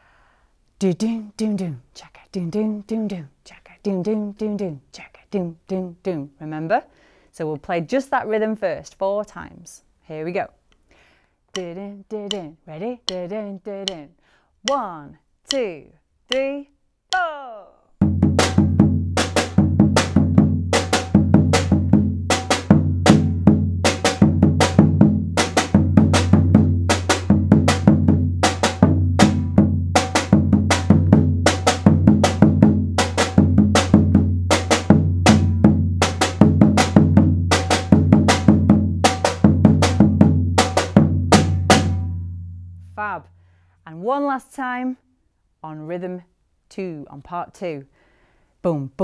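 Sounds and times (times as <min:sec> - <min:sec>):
deep bass drum booms: 0:18.0 - 0:42.0.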